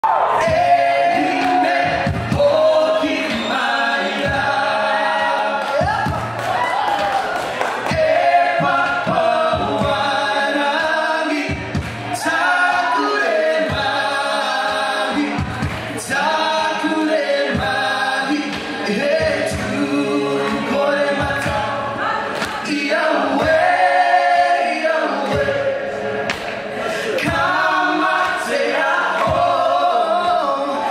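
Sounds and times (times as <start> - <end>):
low drum beats: 0.0 - 3.4, 4.2 - 4.7, 5.8 - 6.6, 7.8 - 10.3, 11.4 - 12.4, 15.3 - 16.6, 17.5 - 17.9, 18.5 - 21.8, 23.3 - 24.0, 27.2 - 28.4
voices singing in harmony: 0.0 - 30.9.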